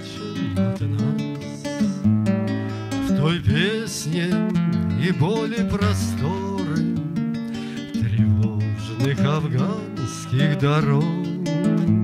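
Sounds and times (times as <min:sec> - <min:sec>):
classical guitar playing: 0:00.0 - 0:12.0.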